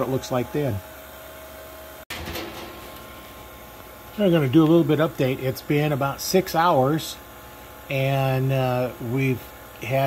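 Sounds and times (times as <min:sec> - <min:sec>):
vacuum pump running: 0:00.0 - 0:10.0.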